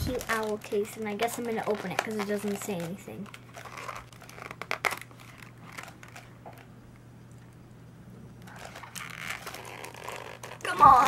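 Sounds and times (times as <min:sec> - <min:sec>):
soft papery rustle: 0:00.0 - 0:06.7, 0:08.4 - 0:11.0
low steady hum: 0:00.0 - 0:11.0.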